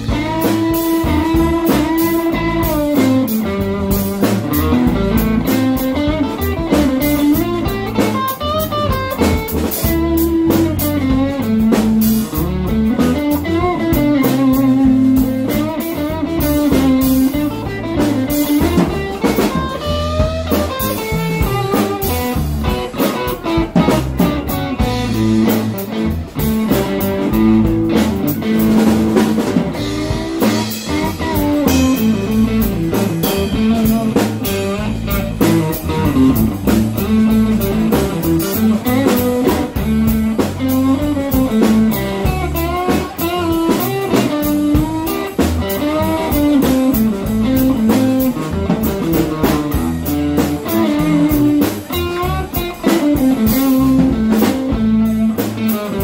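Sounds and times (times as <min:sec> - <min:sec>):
drum kit: 0:00.0 - 0:56.0
electric bass: 0:00.0 - 0:56.0
electric guitar lead with bends: 0:00.0 - 0:56.0.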